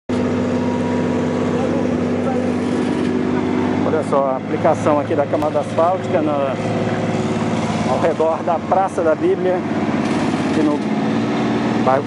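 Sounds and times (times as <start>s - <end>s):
paving machine engine droning: 0.1s - 12.0s.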